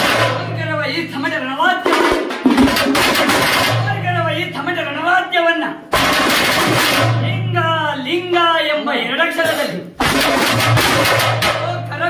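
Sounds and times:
drums beaten with sticks: 0.0 - 4.9, 5.9 - 7.6, 9.4 - 12.0.

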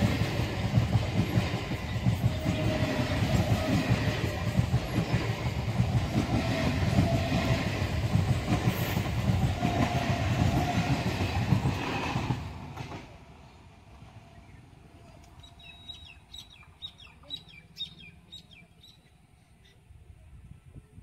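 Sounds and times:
train wheels clattering over rails: 0.0 - 13.2.

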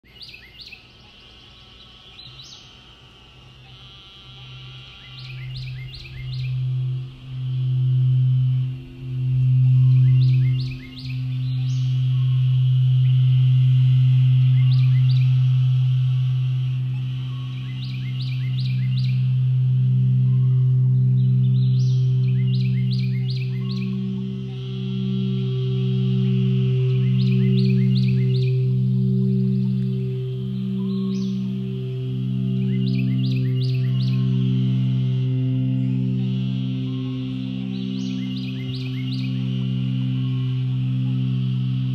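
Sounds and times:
frogs and birds chirping: 0.0 - 41.9
higher singing bowls wavering: 3.4 - 41.9
deep singing bowl tone: 3.5 - 41.9.

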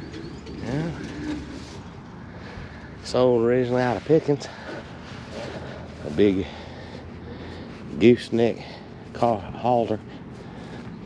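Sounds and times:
bird cooing: 0.1 - 1.8.

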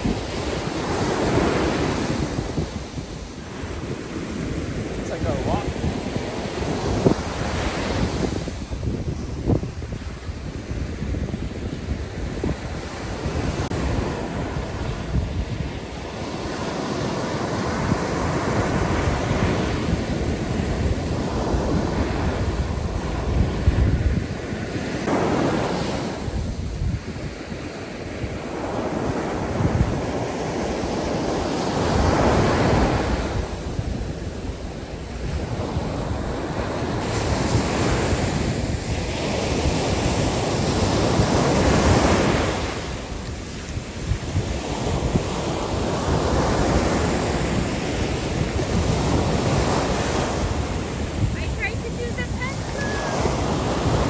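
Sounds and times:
ocean surf breaking on beach: 0.0 - 54.0
wind buffeting the microphone: 0.0 - 54.0.

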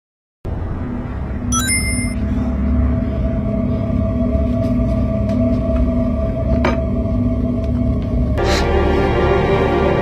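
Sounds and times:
dark ambient drone music: 2.2 - 10.0.

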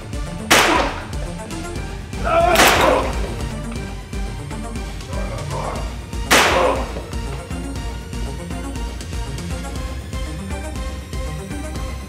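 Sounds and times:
synth background music: 0.0 - 12.0
sharp impact crack: 0.5 - 1.2, 2.4 - 3.5, 6.2 - 7.1.

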